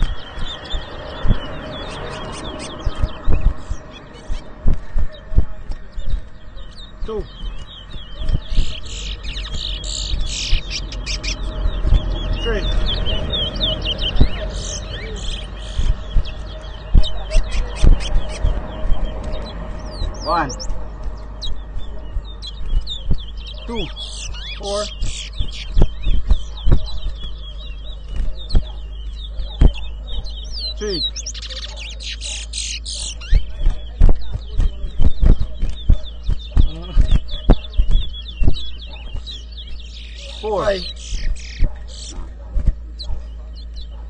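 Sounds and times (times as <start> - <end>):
finches singing: 0.0 - 44.0.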